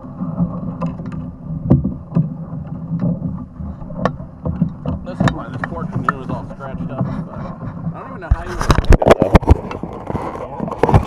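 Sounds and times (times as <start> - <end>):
sharp knocks and bumps: 0.8 - 9.9.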